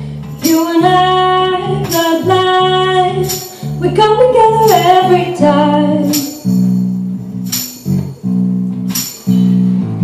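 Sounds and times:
guitar playing low chords: 0.0 - 10.0.

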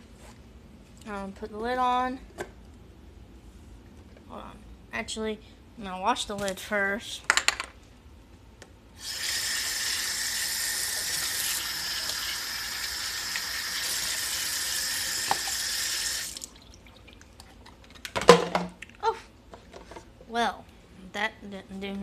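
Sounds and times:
faucet water rushing: 9.0 - 17.2.

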